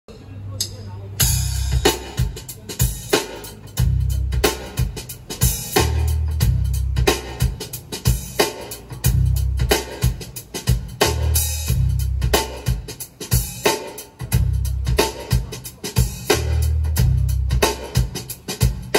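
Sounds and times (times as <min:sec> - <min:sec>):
drum-heavy music with deep bass: 0:00.6 - 0:18.9.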